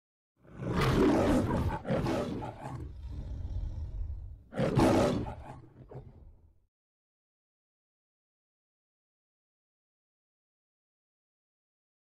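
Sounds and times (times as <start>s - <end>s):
lion roaring: 0.4s - 6.4s
lion growl: 0.4s - 6.5s.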